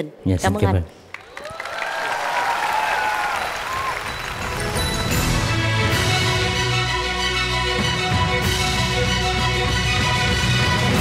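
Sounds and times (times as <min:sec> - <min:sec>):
studio audience applauding: 0:01.1 - 0:05.2
music playing: 0:03.9 - 0:11.0.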